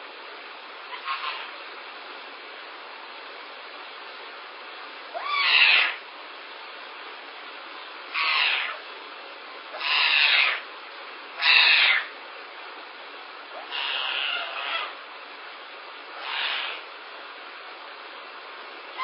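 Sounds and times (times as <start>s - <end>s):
steady background hiss: 0.0s - 19.0s
young animal hoarse calls: 0.9s - 1.6s, 5.1s - 6.0s, 8.1s - 8.9s, 9.7s - 10.7s, 11.4s - 12.1s, 13.5s - 15.0s, 16.2s - 16.9s.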